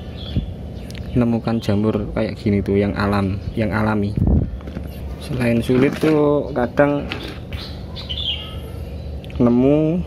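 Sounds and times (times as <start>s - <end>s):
small bird chirping: 0.0s - 9.8s
low outdoor rumble: 0.0s - 10.0s.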